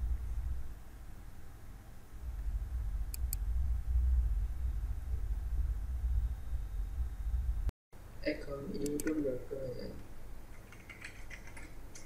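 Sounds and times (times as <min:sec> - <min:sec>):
typing on computer keyboard: 0:10.5 - 0:12.0.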